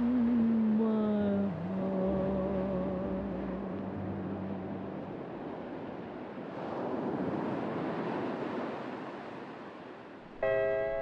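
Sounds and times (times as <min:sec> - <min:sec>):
distant ocean waves: 0:00.0 - 0:11.0
guitar plucked chord: 0:01.3 - 0:05.2, 0:10.4 - 0:11.0.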